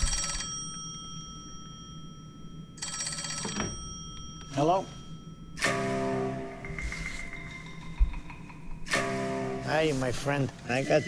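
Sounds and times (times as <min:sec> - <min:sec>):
telephone bell ringing: 0:00.0 - 0:06.8.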